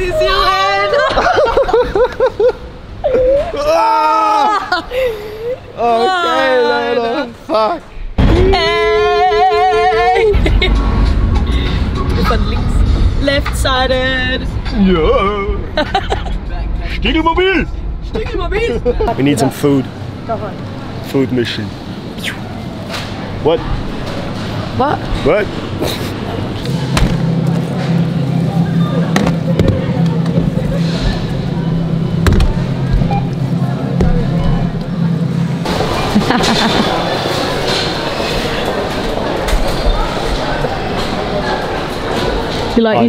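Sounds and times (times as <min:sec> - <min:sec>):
steady low hum: 0:07.4 - 0:42.8.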